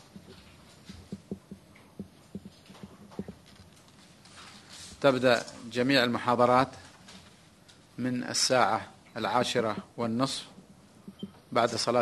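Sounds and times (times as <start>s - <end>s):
knocks and taps on table: 1.0s - 3.4s.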